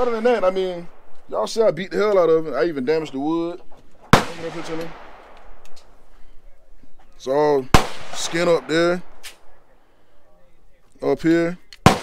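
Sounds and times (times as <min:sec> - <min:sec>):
faint gunshot crack: 0:04.1 - 0:05.9, 0:07.6 - 0:09.6, 0:11.8 - 0:12.0.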